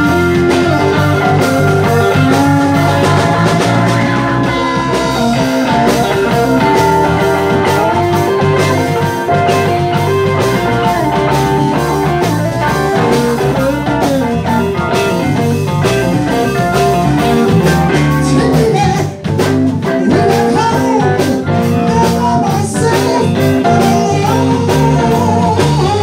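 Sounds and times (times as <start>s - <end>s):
drum kit: 0.0s - 26.0s
electric bass: 0.0s - 26.0s
electric guitar: 0.0s - 26.0s
keyboards: 0.0s - 26.0s.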